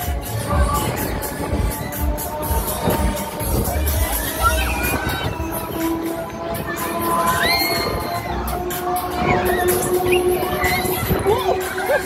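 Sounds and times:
riders shrieking and shouting: 0:03.8 - 0:05.6, 0:06.8 - 0:08.5, 0:09.1 - 0:12.0.

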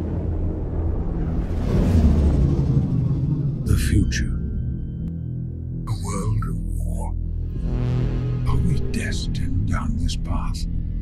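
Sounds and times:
whoosh: 0:00.0 - 0:03.7
deep rumbling drone: 0:00.0 - 0:11.0.

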